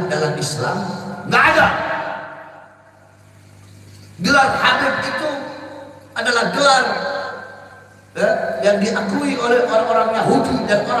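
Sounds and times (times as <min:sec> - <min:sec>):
speech echo: 0:00.0 - 0:03.0, 0:04.2 - 0:11.0
low steady hum: 0:00.0 - 0:11.0.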